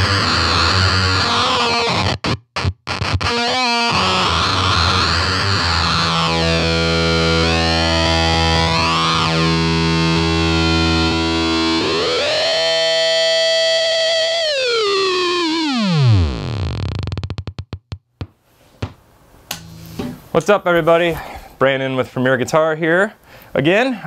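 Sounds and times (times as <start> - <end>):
fuzz electric guitar note: 0.0 - 17.7, 19.5 - 20.2.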